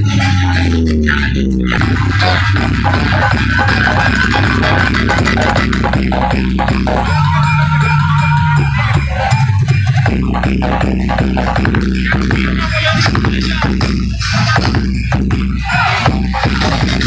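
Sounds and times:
loud dance music with heavy bass: 0.0s - 17.0s.

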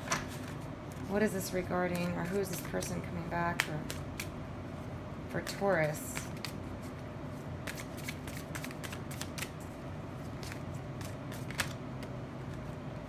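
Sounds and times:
cards being shuffled: 3.5s - 4.4s, 5.4s - 12.9s.

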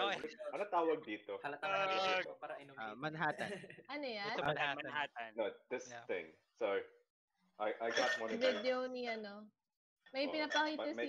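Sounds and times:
voices on a voice call: 0.0s - 7.0s, 7.6s - 9.5s, 10.2s - 11.0s.

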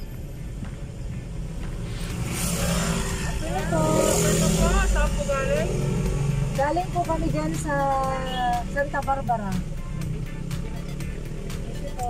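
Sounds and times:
rush of noise: 0.0s - 7.0s
car engine and tyres rumbling: 0.0s - 12.0s.

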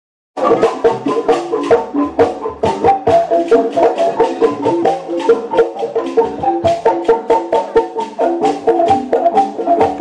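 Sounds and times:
shaken percussion: 0.4s - 10.0s
wooden percussion struck notes: 0.4s - 10.0s.

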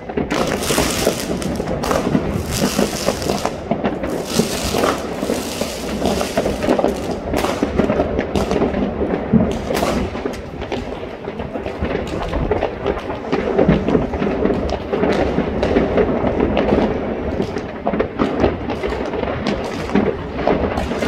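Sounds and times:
fireworks and firecrackers banging: 0.0s - 21.0s.

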